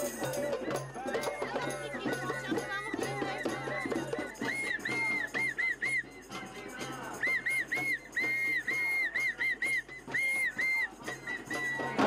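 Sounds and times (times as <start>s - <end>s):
clattering crowd noise: 0.0s - 12.0s
whistle short blasts: 4.2s - 12.0s.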